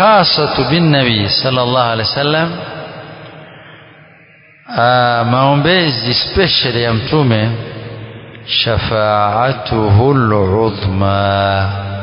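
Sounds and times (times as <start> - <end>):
man lecturing: 0.0 - 2.8, 4.7 - 7.7, 8.4 - 11.9
echo: 0.0 - 12.0.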